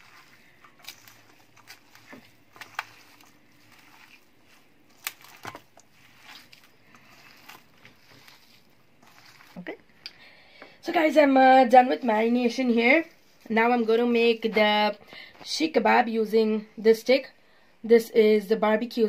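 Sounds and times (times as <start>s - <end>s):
hands squishing minced meat: 0.0s - 10.0s.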